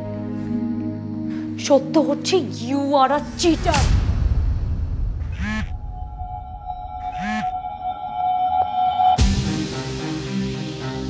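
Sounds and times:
steady held tone: 5.7 - 9.2.

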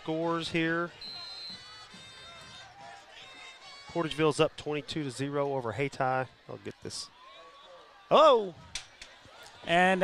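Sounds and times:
crowd murmur: 0.2 - 10.0.

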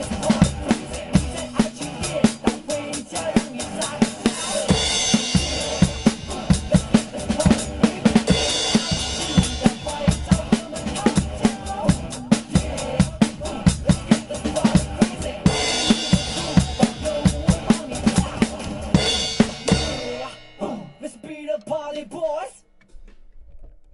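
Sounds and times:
drum kit groove: 0.0 - 21.9.

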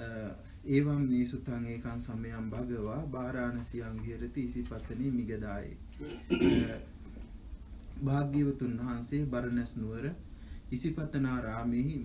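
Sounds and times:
man clearing his throat: 6.0 - 6.9.

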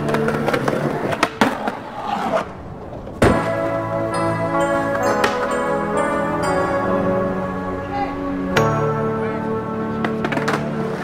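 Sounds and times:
background music: 0.0 - 1.7, 2.4 - 11.0
skateboard clacks: 0.0 - 2.5, 4.8 - 5.6, 9.9 - 11.0
loud skateboard impact: 0.0 - 3.6
skateboard wheels rolling on concrete: 0.0 - 11.0.

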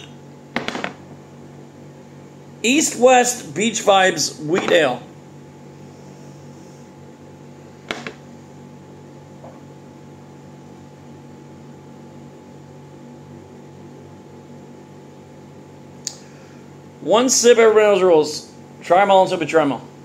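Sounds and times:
low appliance hum: 0.0 - 20.0
glass set down on table: 0.6 - 1.0, 7.9 - 8.2, 9.4 - 9.7.

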